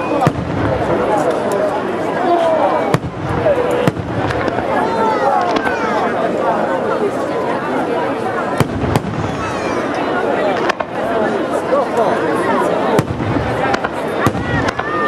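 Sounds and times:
fireworks bangs: 0.0s - 1.6s, 2.8s - 6.0s, 8.5s - 11.6s, 12.8s - 15.0s
crowd chatter: 0.0s - 15.0s.

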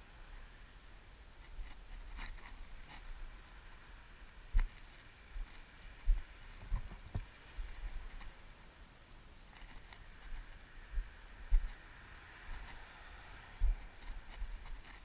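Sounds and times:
low wind rumble on microphone: 0.0s - 15.0s.

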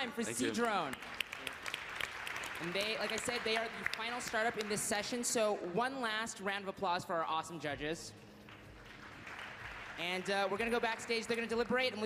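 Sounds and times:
audience applauding: 0.3s - 5.4s, 8.4s - 12.0s.

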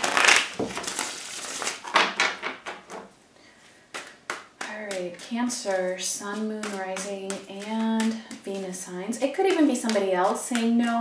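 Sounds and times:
cards being shuffled: 0.0s - 3.0s, 3.9s - 11.0s
cards tapping and clicking: 3.9s - 11.0s.

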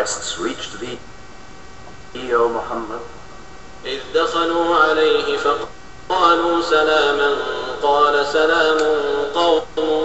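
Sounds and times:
man chanting recitation: 3.8s - 10.0s.

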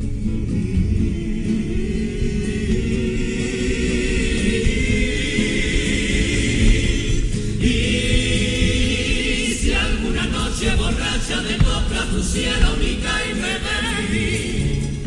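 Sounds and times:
guitar accompaniment: 0.0s - 15.0s
male chorus singing: 0.5s - 15.0s.

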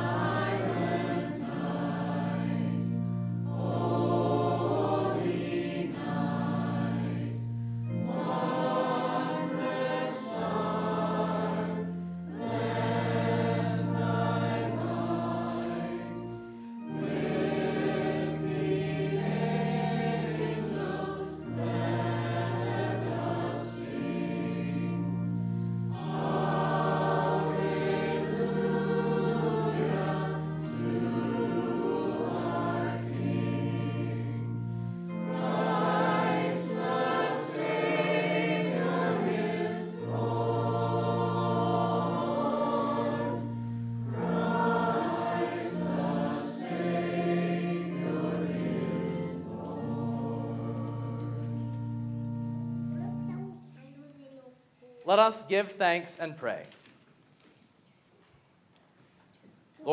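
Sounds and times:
congregation singing a hymn: 0.0s - 53.7s
sustained accompaniment chords: 0.0s - 54.3s.

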